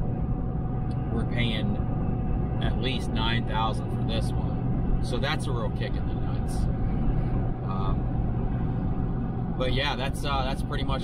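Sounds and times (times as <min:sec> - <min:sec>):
low even hum: 0:00.0 - 0:11.0
pickup truck engine and road drone: 0:00.0 - 0:11.0.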